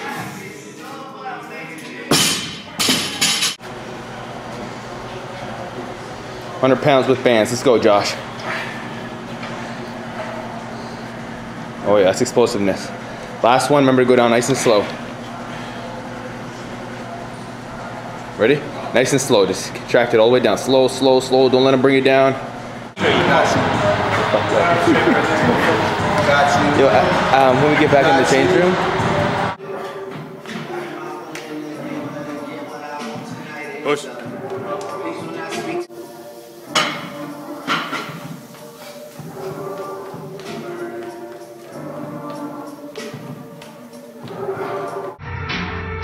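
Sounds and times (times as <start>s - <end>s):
ventilation hiss and hum: 0.0s - 29.6s, 30.4s - 45.2s
background music: 18.5s - 46.0s.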